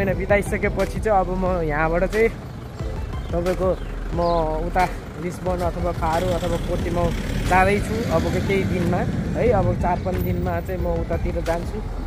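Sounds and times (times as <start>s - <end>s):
man talking: 0.0s - 2.4s, 3.3s - 12.0s.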